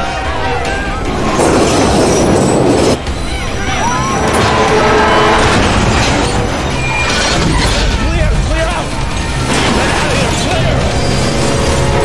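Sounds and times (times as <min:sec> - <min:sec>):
train wheels rumbling on track: 0:00.2 - 0:12.0
high-pitched wheel squeal: 0:00.8 - 0:07.9.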